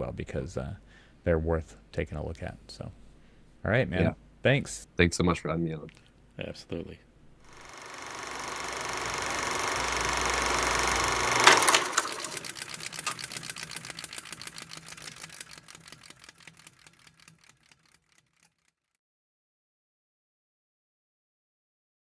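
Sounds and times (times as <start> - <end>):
run of clicks: 8.4 - 19.0.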